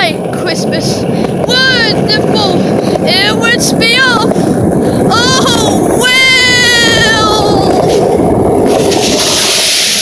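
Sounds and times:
wind rumble on microphone: 0.0s - 10.0s
high voice singing: 5.0s - 7.9s.

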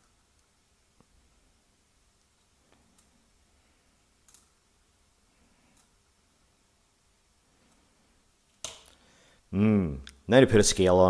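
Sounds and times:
faint clicks: 4.2s - 4.6s, 5.6s - 6.0s.

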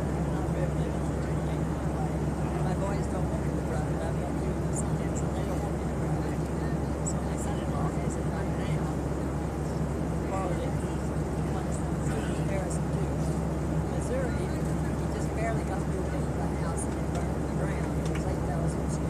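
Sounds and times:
airliner cabin drone: 0.0s - 19.0s
faint passenger voices: 0.0s - 19.0s.

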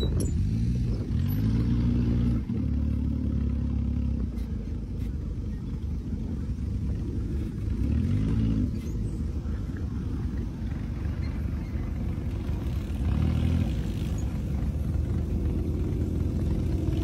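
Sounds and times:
dune buggy engine running: 0.0s - 17.0s.

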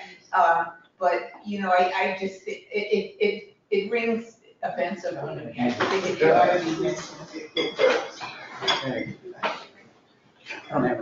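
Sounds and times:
murmur of voices: 4.7s - 9.8s
tableware clinking: 5.6s - 9.6s.

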